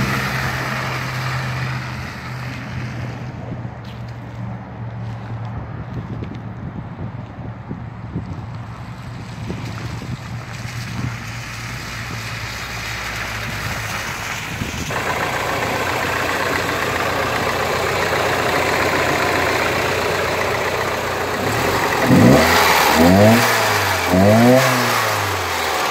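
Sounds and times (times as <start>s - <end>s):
car engine idling and revving: 0.0s - 25.9s.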